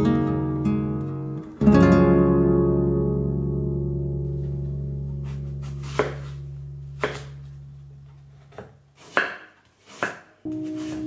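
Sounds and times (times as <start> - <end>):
held music chord: 0.0 - 8.4, 10.5 - 11.0
music: 0.0 - 8.4, 10.5 - 11.0
knife chopping on wooden board: 5.8 - 6.3, 7.0 - 7.3, 9.0 - 11.0.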